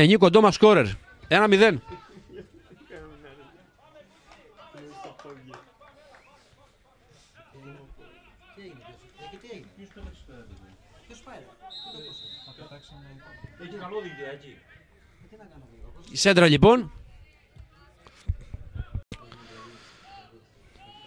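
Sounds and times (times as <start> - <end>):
high whistle tone: 11.7 - 13.1.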